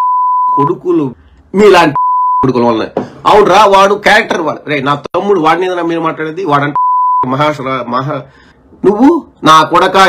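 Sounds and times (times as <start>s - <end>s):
censor bleep: 0.0s - 0.8s, 2.0s - 2.6s, 6.8s - 7.3s
man speaking heatedly: 8.8s - 10.0s.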